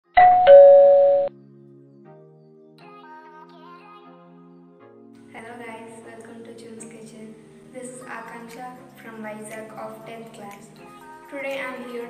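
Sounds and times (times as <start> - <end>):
two-note doorbell chime: 0.2 - 1.3.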